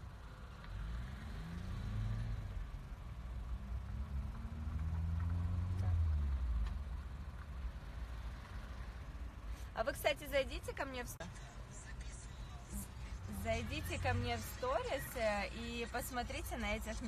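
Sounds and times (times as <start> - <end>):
car engine rumble from inside: 0.0 - 17.0.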